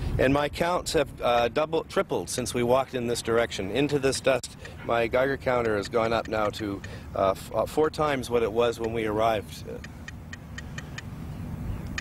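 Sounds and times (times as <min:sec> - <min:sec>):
geiger counter clicking: 0:05.6 - 0:07.0, 0:09.8 - 0:11.1.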